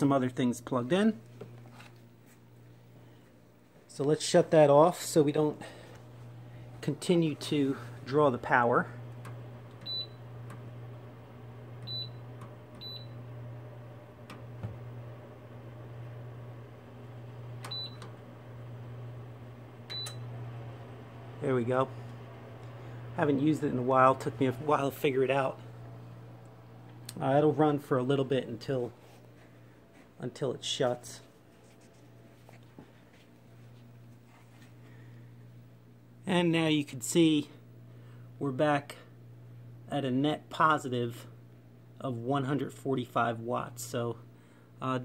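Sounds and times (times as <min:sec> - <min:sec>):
steady low hum: 0:00.0 - 0:45.0.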